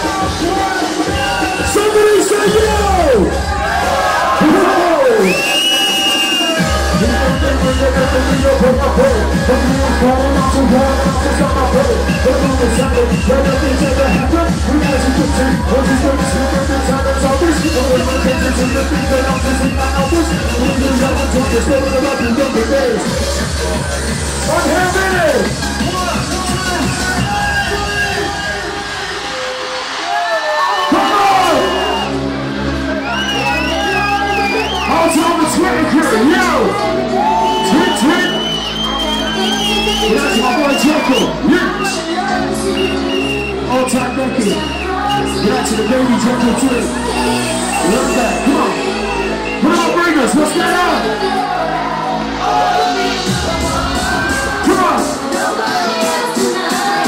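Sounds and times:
deep bass: 0.0 - 5.7, 6.3 - 30.0, 31.0 - 55.6
hardcore rave music: 0.0 - 57.0.

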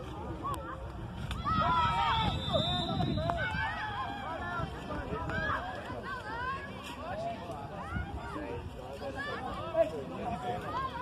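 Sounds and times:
children calling and shouting: 0.0 - 11.0
low rumble of wind or traffic: 0.0 - 11.0.

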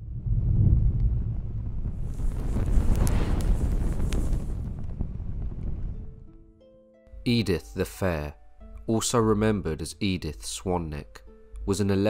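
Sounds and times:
deep rumbling whoosh: 0.0 - 6.3.

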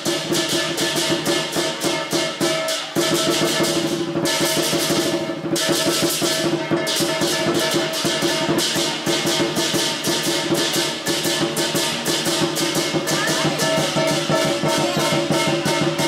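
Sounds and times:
crashing cymbals: 0.0 - 16.0
drum beating fast rhythm: 0.0 - 16.0.

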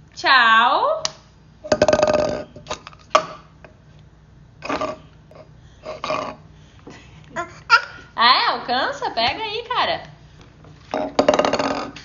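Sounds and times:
croaky burp-like vocal sound: 1.7 - 2.6, 4.6 - 5.1, 5.9 - 6.4, 10.9 - 12.0.

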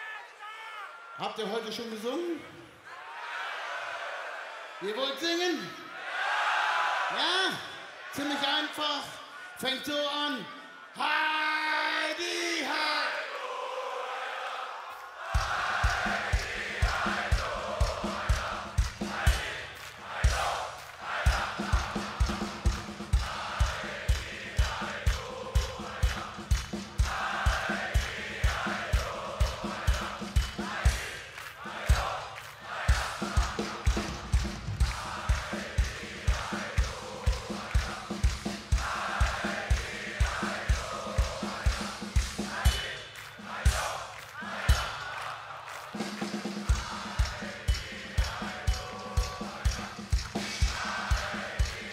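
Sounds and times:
crowd singing along: 5.9 - 7.2, 12.7 - 51.9
steady kick drum beat: 15.3 - 51.9.

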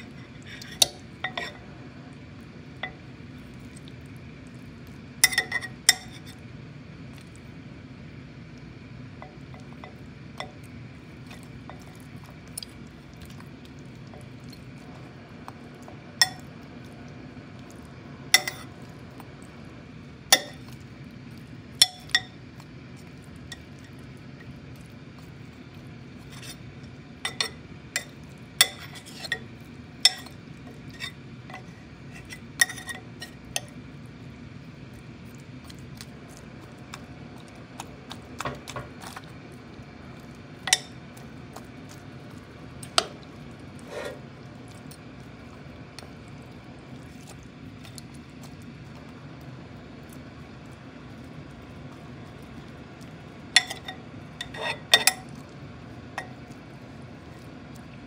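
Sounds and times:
steady low hum: 0.0 - 58.0
metal spoon scraping clay pot: 43.8 - 44.2, 53.6 - 55.2.

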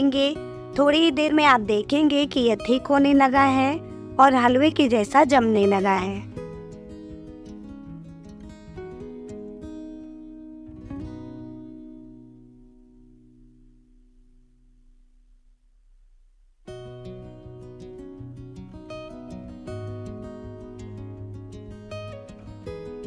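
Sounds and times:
acoustic guitar music: 0.0 - 23.0.

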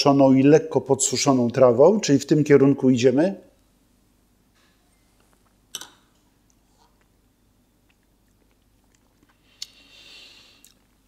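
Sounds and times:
soft hiss of breath: 9.4 - 10.8.

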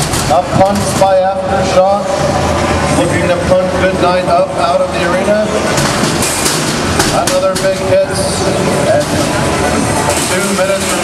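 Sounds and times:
crowd voices: 0.0 - 11.0
metallic clatter and scraping: 5.1 - 11.0.

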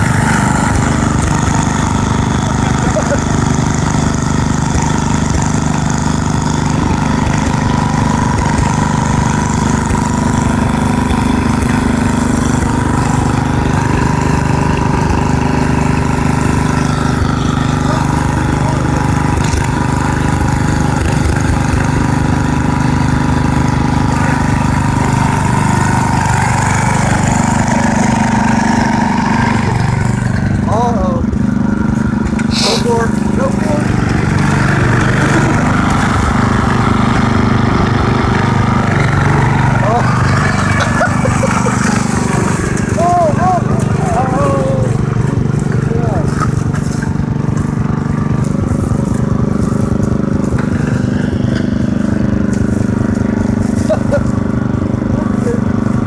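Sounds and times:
lawn mower engine running: 0.0 - 56.0.

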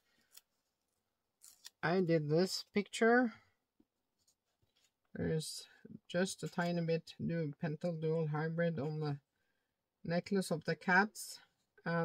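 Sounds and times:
woman speaking: 1.8 - 3.4, 5.2 - 9.2, 10.1 - 12.0.

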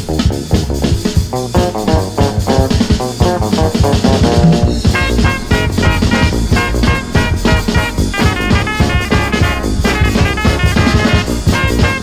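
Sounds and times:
bass guitar: 0.0 - 12.0
drum kit beat: 0.0 - 12.0
electric guitar: 0.0 - 12.0.

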